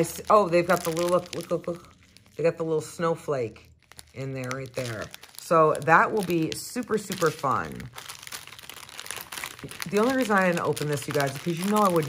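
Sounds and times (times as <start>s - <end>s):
plastic packaging crinkling: 0.0s - 12.0s.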